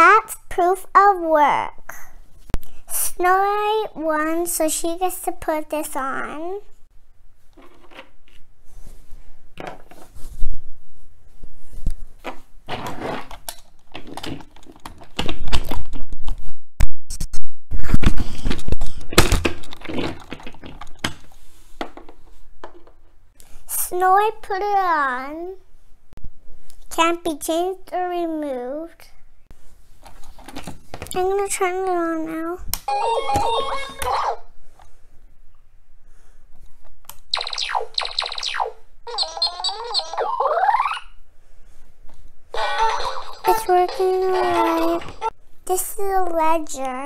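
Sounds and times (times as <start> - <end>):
toy electronic start-up jingle: 37.4 - 41.0.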